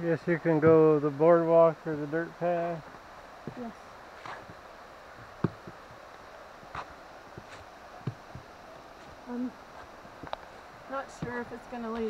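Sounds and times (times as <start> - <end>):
footsteps on forest trail: 2.9 - 12.0.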